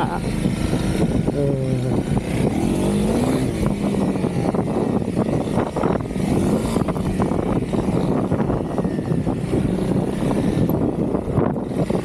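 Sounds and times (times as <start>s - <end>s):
motorcycle engine running: 0.0s - 12.0s
wind noise on microphone: 0.0s - 12.0s.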